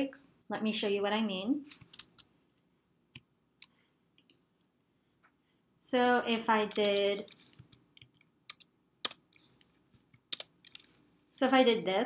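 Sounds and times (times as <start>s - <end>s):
woman speaking: 0.0s - 1.7s, 5.8s - 7.4s, 11.4s - 12.0s.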